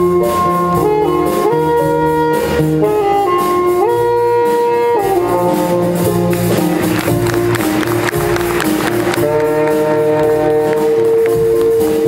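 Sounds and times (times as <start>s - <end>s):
jazz band playing swing: 0.0s - 12.0s.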